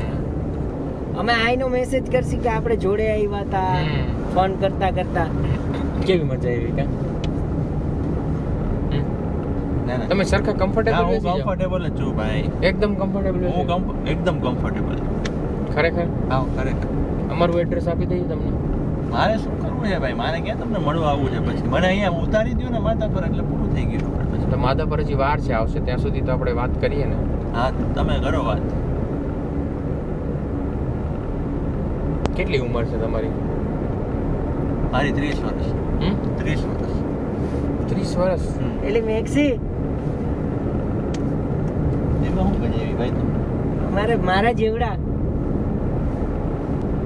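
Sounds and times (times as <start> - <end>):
car cabin road and engine rumble: 0.0 - 47.0
men talking: 5.7 - 7.1, 9.8 - 28.8, 32.3 - 33.5, 34.8 - 39.7, 42.0 - 45.0.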